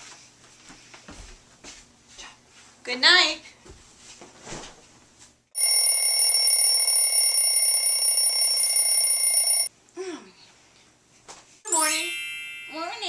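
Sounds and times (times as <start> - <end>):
alarm clock bell ringing: 5.6 - 9.7, 11.7 - 13.0.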